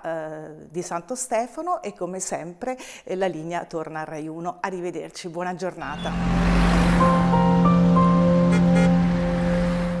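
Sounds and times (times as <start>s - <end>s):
sustained theme music notes: 5.8s - 10.0s.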